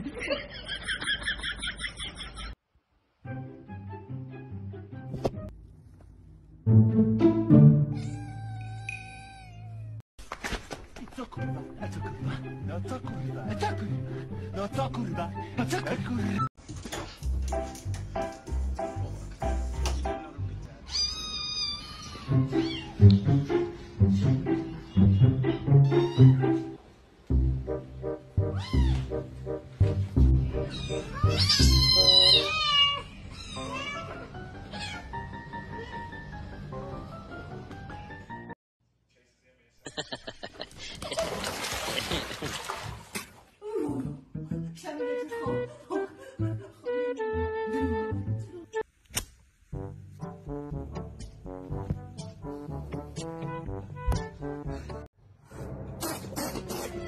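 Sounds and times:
background music: 3.1s - 5.6s, 6.5s - 8.3s, 11.2s - 16.5s, 17.2s - 20.7s, 22.2s - 32.5s, 43.6s - 48.8s, 49.8s - 57.0s
cat meowing: 20.9s - 23.0s, 25.8s - 26.6s, 30.6s - 35.1s
kittens mewing: 30.6s - 35.1s.

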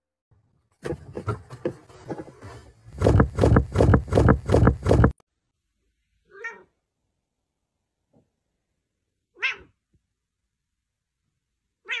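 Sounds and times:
cat meowing: 6.3s - 6.7s, 9.4s - 9.8s.

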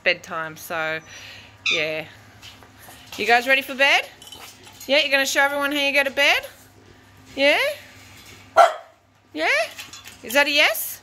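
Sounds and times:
dog barking: 8.6s - 9.0s.

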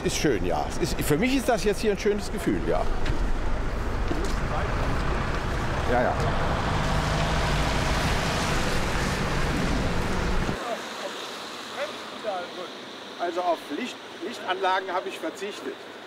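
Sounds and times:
car engine rumbling nearby: 0.0s - 14.4s
street traffic noise: 0.0s - 16.0s.

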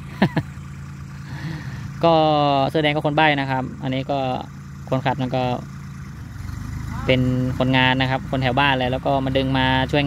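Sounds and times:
distant tractor engines humming: 0.0s - 10.0s.

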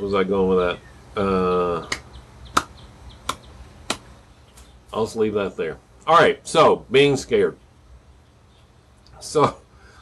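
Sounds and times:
faint background hiss: 0.0s - 10.0s
sharp clicks: 1.9s - 4.1s.

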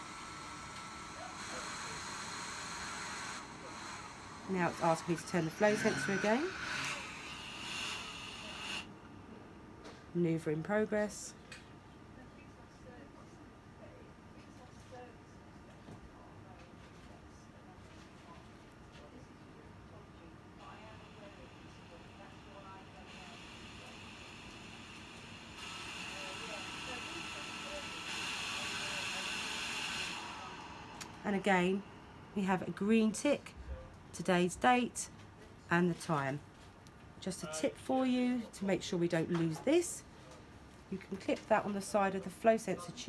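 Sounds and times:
gas hissing with faint whistle: 0.0s - 8.9s, 21.2s - 32.5s.

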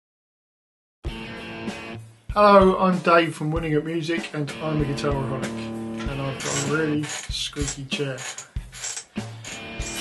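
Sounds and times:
background guitar music: 1.1s - 10.0s
squeaky chair creaking: 6.0s - 10.0s.

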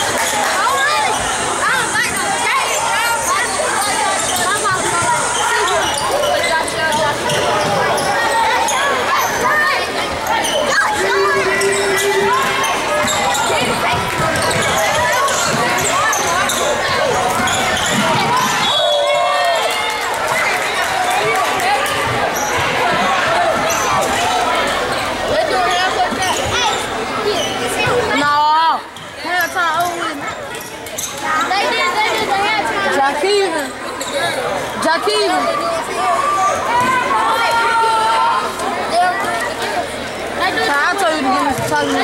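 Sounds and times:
echoing voices and shouts: 0.0s - 30.5s.

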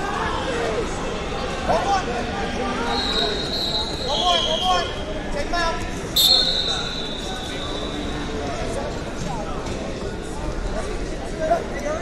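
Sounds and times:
referee's whistle blast: 2.9s - 5.1s, 6.2s - 8.4s.

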